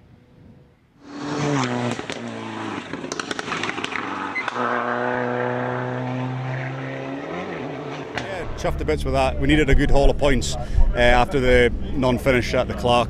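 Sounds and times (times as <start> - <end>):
rally car engine revving: 1.0 - 12.9
sharp pops and cracks: 1.9 - 4.6.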